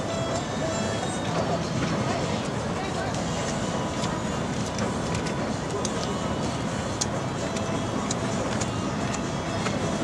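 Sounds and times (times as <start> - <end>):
train rumbling over steel bridge: 0.0 - 10.0.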